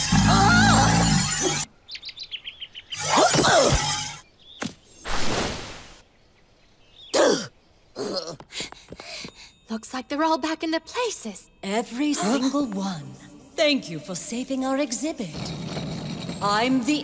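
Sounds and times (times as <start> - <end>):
birds chirping: 0.0 - 9.6.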